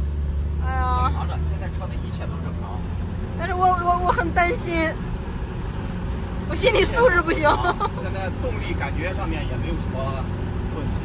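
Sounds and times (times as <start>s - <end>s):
truck engine and road drone: 0.0s - 11.0s.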